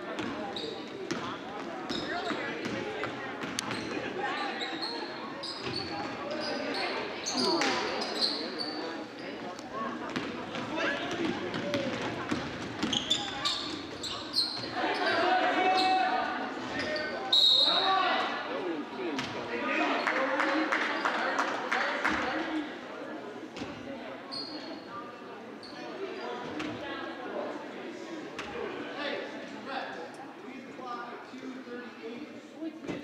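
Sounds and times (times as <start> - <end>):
people talking and calling out: 0.0 - 33.0
sneakers squeaking: 0.2 - 9.4, 10.1 - 16.1, 24.3 - 24.9
referee's whistle: 17.3 - 17.9.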